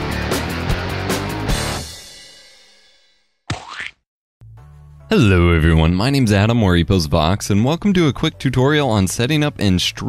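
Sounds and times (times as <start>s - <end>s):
cartoon boing sound effect: 3.5s - 4.0s.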